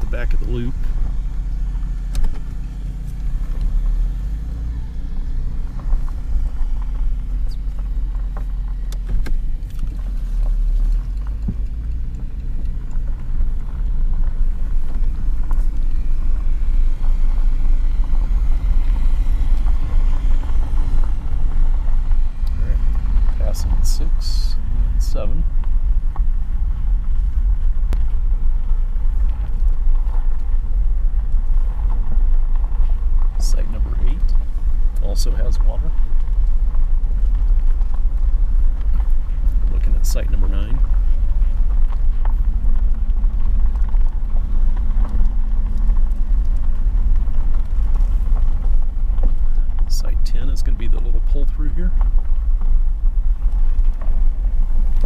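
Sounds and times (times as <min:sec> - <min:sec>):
vehicle driving on gravel: 0:00.0 - 0:55.0.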